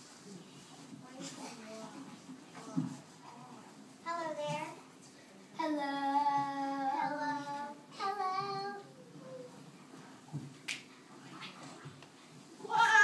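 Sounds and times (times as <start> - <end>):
child singing long notes: 5.8 - 9.5.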